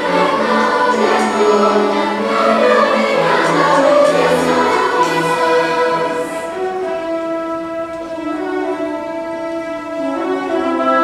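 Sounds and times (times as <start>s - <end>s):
children's choir singing: 0.0s - 11.0s
orchestra playing: 0.0s - 11.0s.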